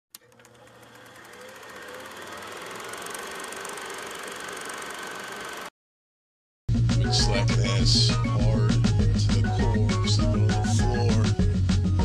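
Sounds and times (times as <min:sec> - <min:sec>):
small machine clattering: 0:00.2 - 0:05.7.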